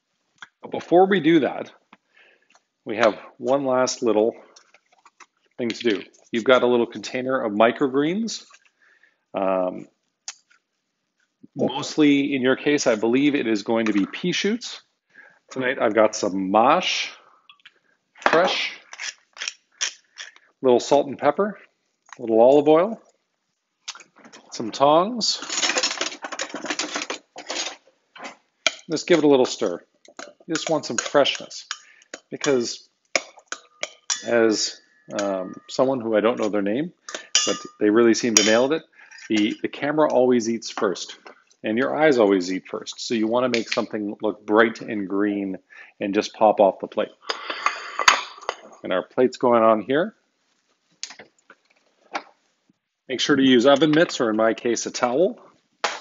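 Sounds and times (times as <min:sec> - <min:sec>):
person speaking: 0:02.8 - 0:04.6, 0:05.6 - 0:08.6, 0:11.4 - 0:14.9, 0:15.5 - 0:17.3, 0:18.2 - 0:18.9, 0:20.6 - 0:23.1, 0:24.2 - 0:25.6, 0:28.9 - 0:32.9, 0:34.1 - 0:47.6, 0:53.1 - 0:55.5
metal utensils rattling: 0:25.4 - 0:27.8, 0:33.5 - 0:35.8, 0:37.1 - 0:37.8.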